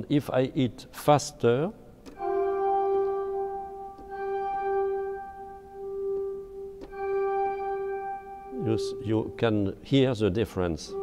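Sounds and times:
pipe organ held note: 2.2 - 11.0.

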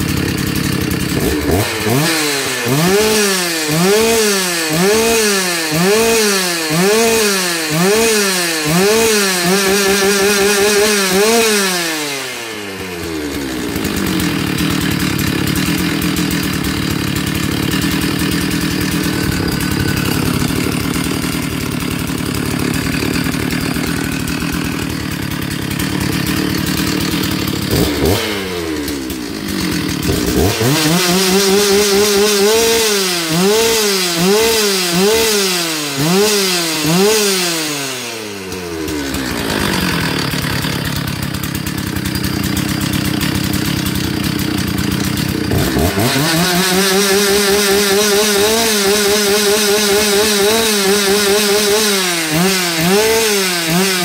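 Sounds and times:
chainsaw engine revving and idling: 0.0 - 54.0.

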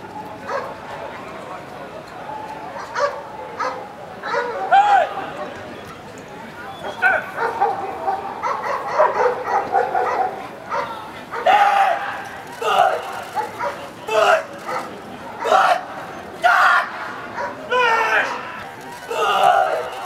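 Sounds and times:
dog barking: 0.5 - 0.7, 2.8 - 4.7, 7.3 - 11.6, 13.3 - 13.8, 14.6 - 15.6, 17.4 - 17.6.

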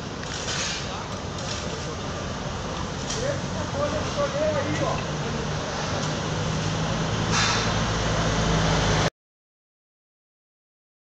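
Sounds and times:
street traffic: 0.0 - 9.1
brief hiss: 7.3 - 7.8.

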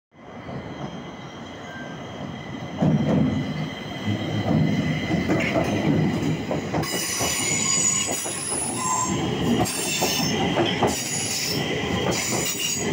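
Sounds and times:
metro train wheel and running noise: 0.2 - 12.9
high-pitched wheel squeal: 6.8 - 10.4.

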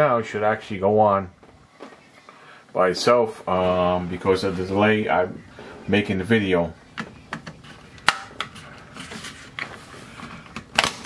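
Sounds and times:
plastic clicks and snaps: 7.0 - 8.6.

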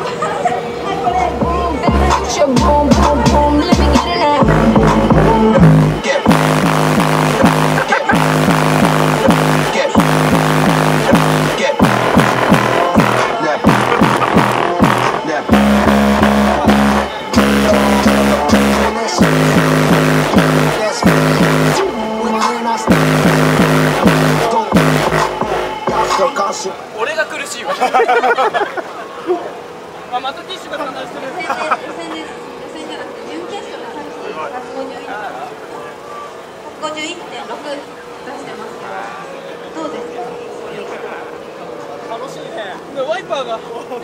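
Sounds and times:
bass-heavy electronic music: 1.2 - 26.7.

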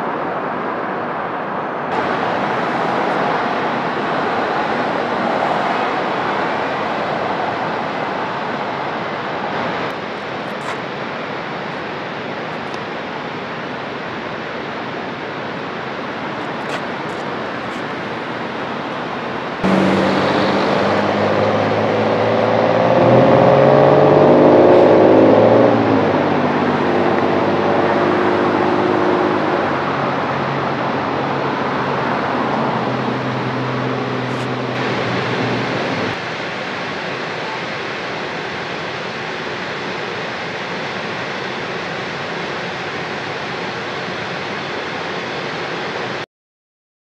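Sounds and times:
roar of wind or traffic: 0.0 - 37.7
vehicle engine accelerating: 19.6 - 36.2.

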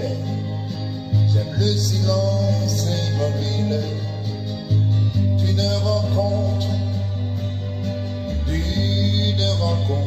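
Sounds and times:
slow pop ballad backing music: 0.0 - 10.0.

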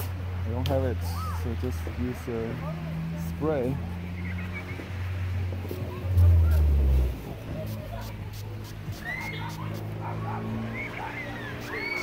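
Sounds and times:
spray bottle spraying: 7.6 - 9.9.

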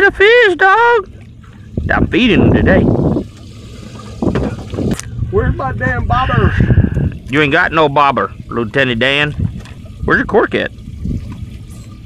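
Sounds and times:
water lapping: 0.0 - 12.0
wind rumbling on microphone: 1.6 - 12.0.

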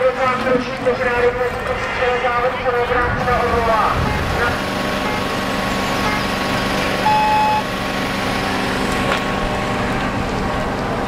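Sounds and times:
outdoor background noise: 0.0 - 11.0
low hum: 0.8 - 11.0
electronic beep: 7.0 - 7.7.

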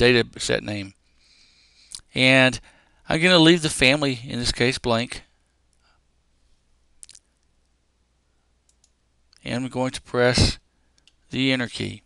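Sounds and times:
computer keyboard keys clicking: 8.7 - 9.0.

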